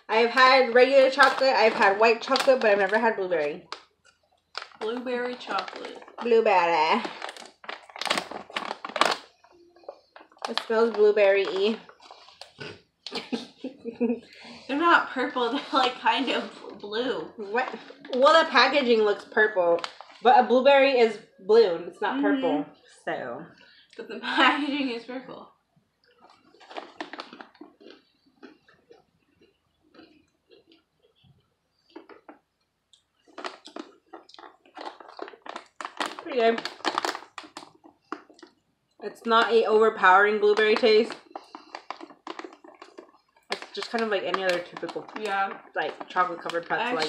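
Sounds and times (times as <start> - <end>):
people chewing crunchy pretzels: 0.0 - 14.7, 26.0 - 47.0
plastic pouch tearing and crinkling: 0.4 - 3.9, 4.5 - 13.2, 19.8 - 20.2, 26.2 - 28.0, 33.2 - 38.5, 40.4 - 47.0.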